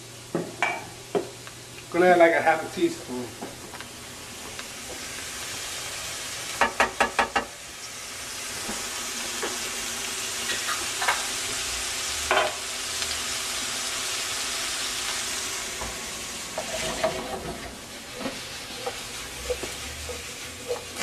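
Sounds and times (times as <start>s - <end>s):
vegetables sizzling in oil: 0.0s - 21.0s.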